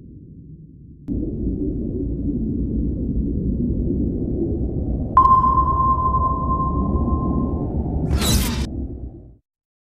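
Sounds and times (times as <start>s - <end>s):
low drone: 0.0s - 9.4s
sonar-style ping: 5.2s - 8.7s.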